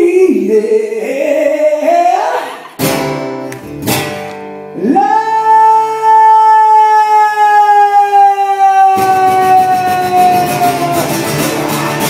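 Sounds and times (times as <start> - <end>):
man singing a long high note: 0.0 - 2.7, 4.8 - 12.0.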